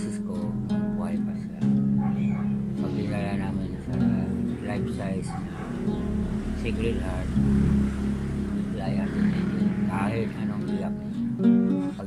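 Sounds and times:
strummed guitar: 0.0 - 12.0.

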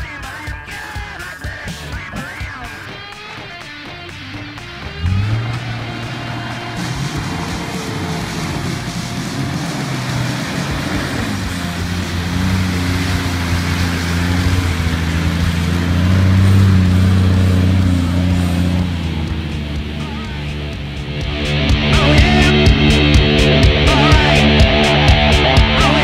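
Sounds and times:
off-road vehicle engine revving: 1.7 - 26.0.

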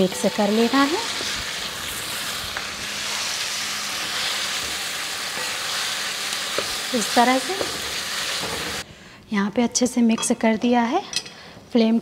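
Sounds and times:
masala sizzling in oil: 0.0 - 8.8.

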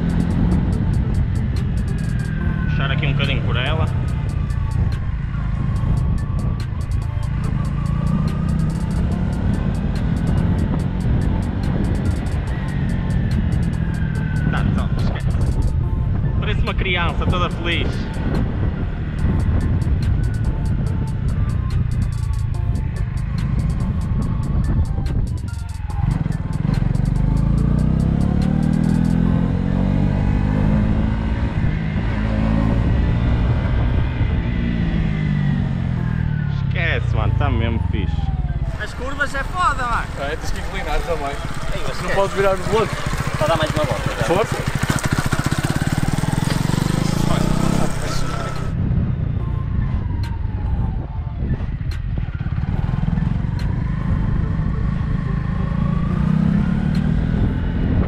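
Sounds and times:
motorcycle engine revving: 0.0 - 50.7, 51.8 - 58.0
wind rushing over microphone: 0.0 - 58.0.

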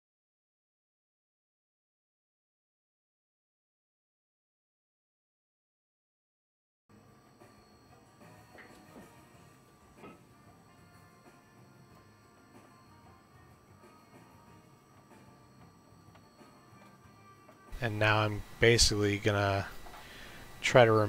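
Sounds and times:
faint background music: 6.9 - 21.0.

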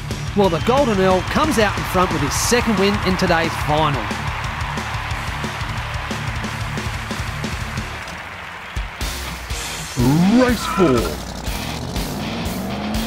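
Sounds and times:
background music with steady beat: 0.0 - 13.0.

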